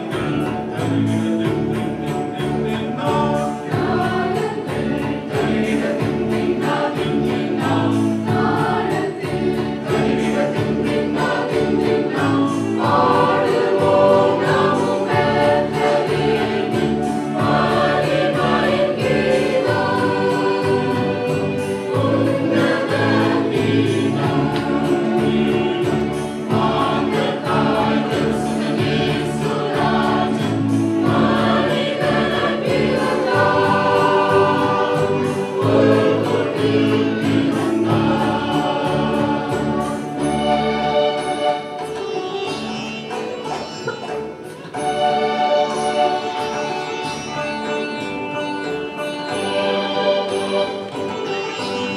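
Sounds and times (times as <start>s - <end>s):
choir singing a carol: 0.0s - 51.9s.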